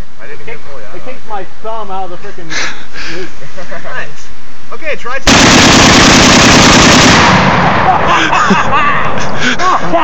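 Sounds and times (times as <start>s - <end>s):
voices: 0.0s - 5.3s, 7.8s - 10.0s
rifle burst with echo: 5.2s - 8.4s.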